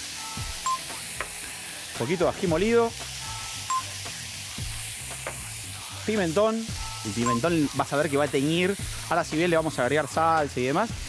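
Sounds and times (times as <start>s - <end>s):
beeping tones of music: 0.0s - 5.0s, 6.7s - 8.0s
food sizzling in a pan: 0.0s - 11.0s.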